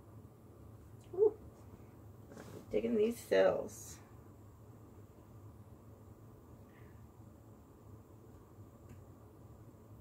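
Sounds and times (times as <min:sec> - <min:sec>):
faint room hum: 0:00.0 - 0:10.0
woman saying ooh: 0:01.1 - 0:01.4.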